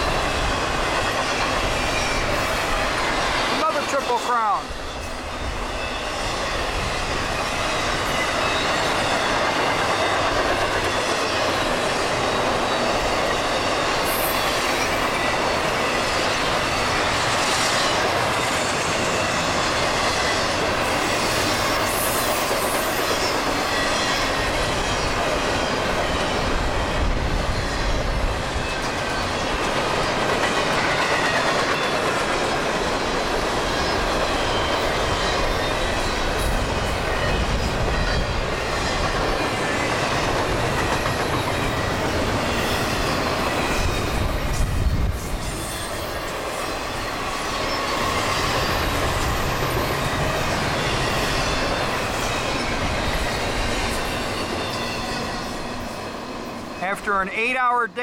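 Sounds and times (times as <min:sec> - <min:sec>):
freight train wheels rushing on rail: 0:00.0 - 0:58.0.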